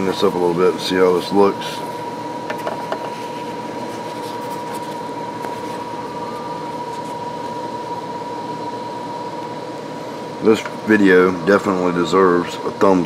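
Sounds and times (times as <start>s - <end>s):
high thin whine: 0.0s - 13.0s
machine hum and hiss: 0.0s - 13.0s.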